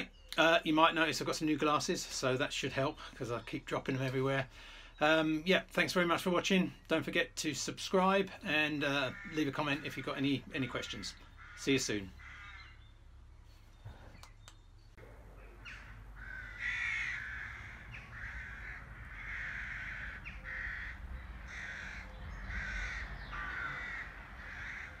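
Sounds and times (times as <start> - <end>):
crow cawing: 9.0 - 10.3, 11.2 - 12.8, 15.5 - 25.0.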